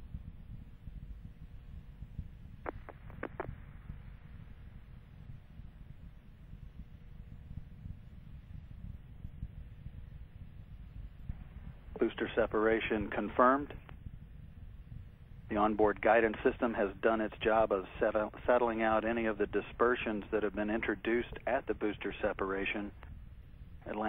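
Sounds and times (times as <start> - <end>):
faint hum: 0.0 - 24.0
low steady rumble: 0.0 - 24.0.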